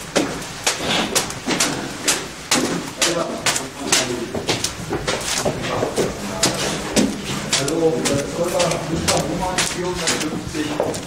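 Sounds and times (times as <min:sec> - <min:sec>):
footsteps on hard stairs: 0:00.0 - 0:11.0.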